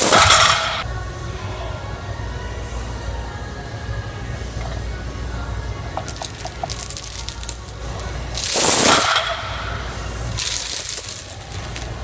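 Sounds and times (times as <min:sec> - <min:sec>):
chains clinking on barbell: 0:06.0 - 0:09.4, 0:10.3 - 0:12.0.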